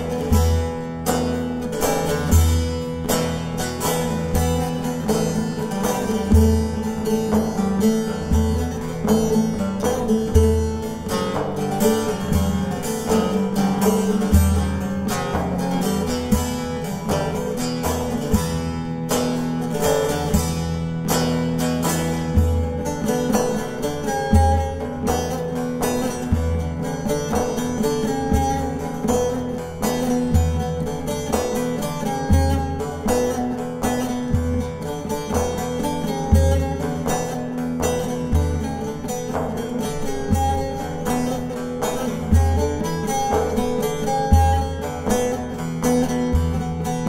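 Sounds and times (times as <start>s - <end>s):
plucked lute folk melody: 0.0s - 47.0s.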